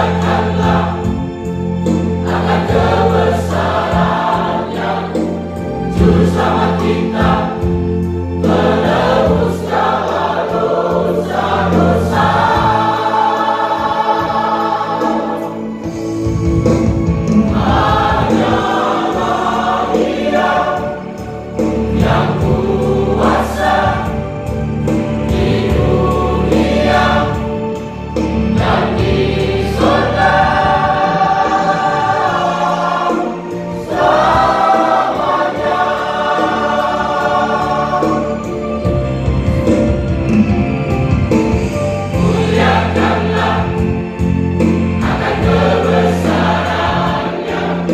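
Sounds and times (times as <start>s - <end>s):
church choir singing: 0.0s - 47.9s.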